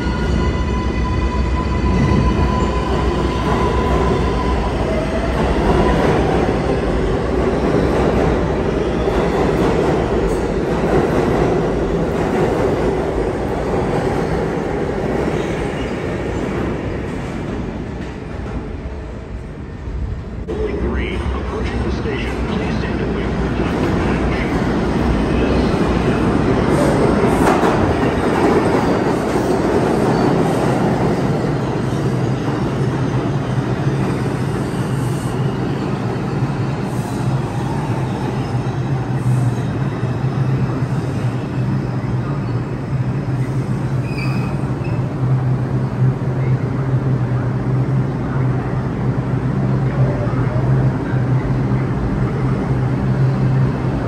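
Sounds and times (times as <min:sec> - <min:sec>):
subway train wheels rumbling: 0:00.0 - 0:54.0
train low hum: 0:00.0 - 0:54.0.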